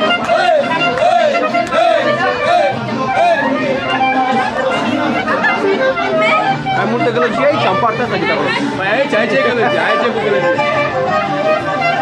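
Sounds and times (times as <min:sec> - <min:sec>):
crowd chatter: 0:00.0 - 0:12.0
live band music: 0:00.0 - 0:12.0.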